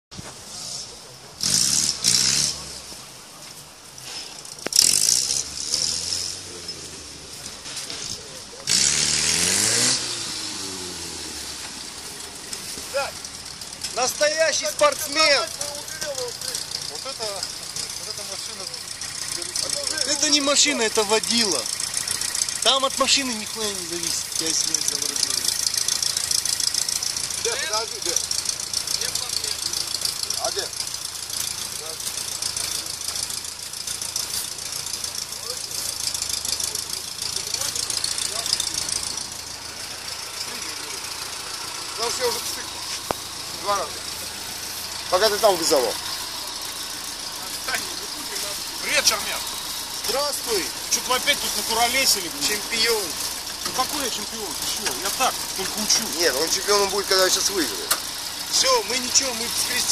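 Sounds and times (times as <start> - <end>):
engine revving hard: 0.5 - 3.0, 4.7 - 7.0, 8.0 - 59.9
indistinct voices: 9.9 - 59.9.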